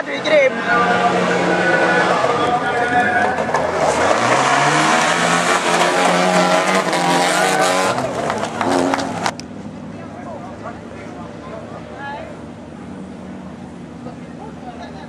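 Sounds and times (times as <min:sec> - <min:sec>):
racing car engines: 0:00.0 - 0:15.0.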